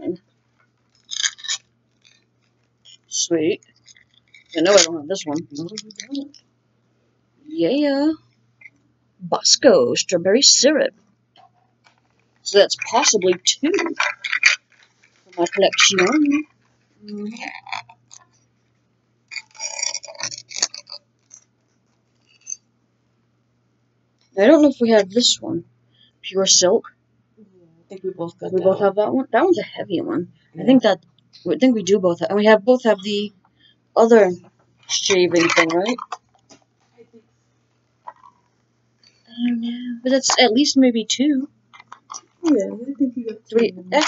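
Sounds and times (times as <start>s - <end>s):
plastic wrapper crinkling: 0.4s - 6.4s, 11.8s - 18.6s, 19.3s - 22.6s, 34.8s - 37.0s.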